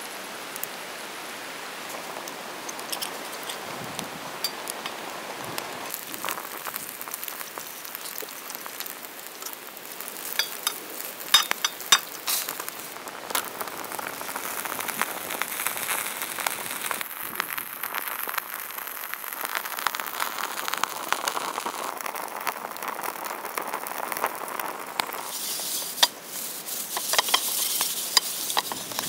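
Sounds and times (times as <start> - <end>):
food sizzling in a pan: 0.0 - 29.0
metal utensils clinking on pan: 10.3 - 12.5, 26.9 - 29.0.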